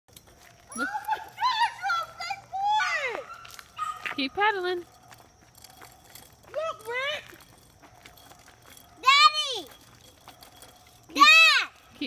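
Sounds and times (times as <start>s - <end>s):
excited high-pitched voices: 0.7s - 4.0s, 6.4s - 7.4s, 9.0s - 10.0s, 11.1s - 12.0s.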